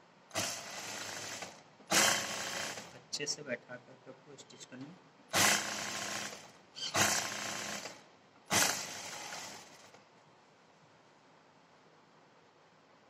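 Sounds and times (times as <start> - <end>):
sewing machine stitching: 0.3 - 3.0, 5.3 - 10.0.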